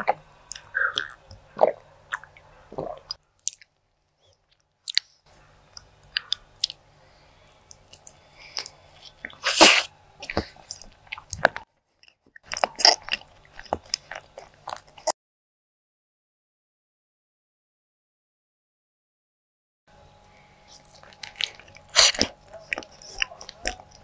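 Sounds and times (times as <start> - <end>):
lip smacks: 0.0 - 6.8, 7.5 - 15.1, 20.7 - 24.0
mouth clicks: 0.0 - 6.8
wet chewing: 0.0 - 15.1, 20.4 - 24.0.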